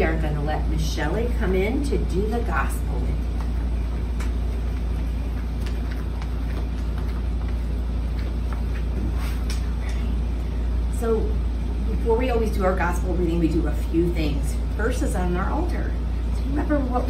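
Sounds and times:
low room rumble: 0.0 - 17.0.

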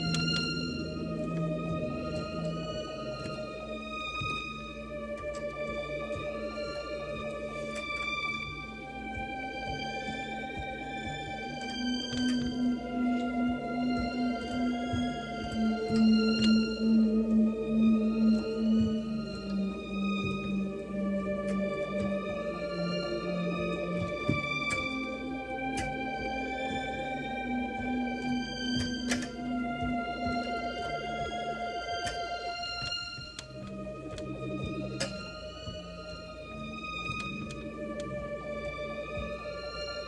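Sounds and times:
electronic keyboard sustained chords: 0.0 - 40.0.

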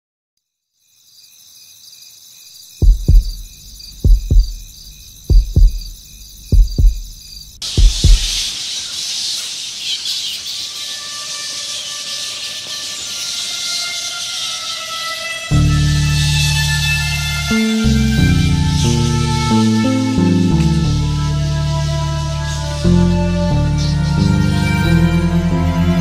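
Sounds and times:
high insect-like chirring: 0.7 - 17.4
heartbeat thumps: 2.8 - 8.5.

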